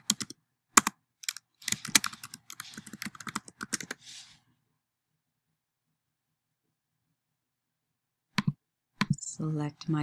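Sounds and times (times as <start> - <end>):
computer keyboard typing: 0.0 - 4.0, 8.4 - 9.2.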